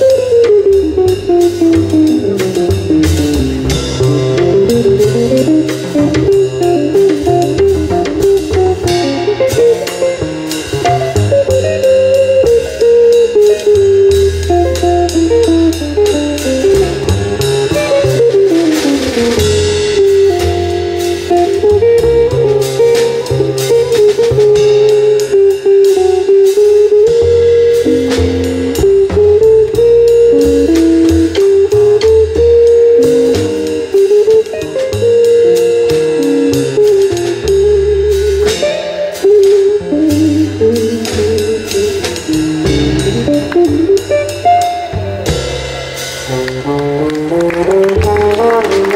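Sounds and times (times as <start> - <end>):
double bass: 0.0 - 48.9
drum kit with cymbals: 0.0 - 48.9
electric jazz guitar line: 0.0 - 48.9.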